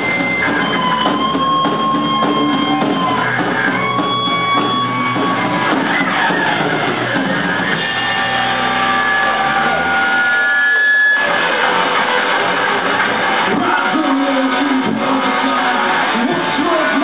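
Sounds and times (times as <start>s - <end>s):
electric guitars: 0.0s - 17.0s
live rock band playing: 0.0s - 17.0s.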